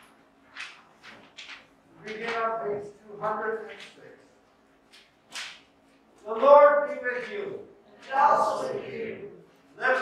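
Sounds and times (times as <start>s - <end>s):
man speaking: 2.0s - 4.2s, 6.2s - 10.0s.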